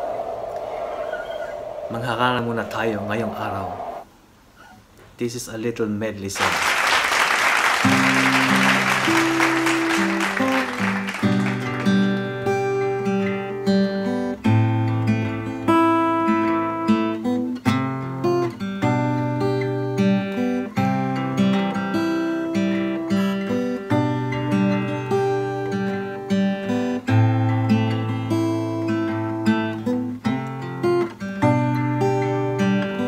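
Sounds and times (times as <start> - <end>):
acoustic guitar strumming: 7.8 - 33.0.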